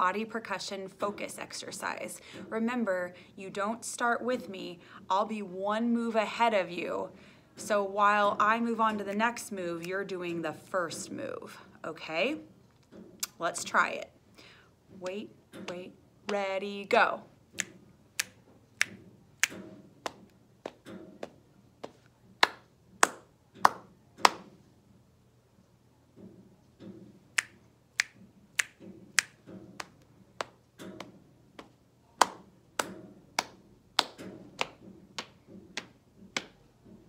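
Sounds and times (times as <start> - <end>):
finger snaps: 17.6 - 20.2, 27.4 - 34.7.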